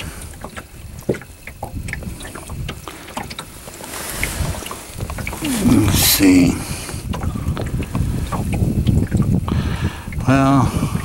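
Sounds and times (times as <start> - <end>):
wind and water rumble: 0.0 - 11.0.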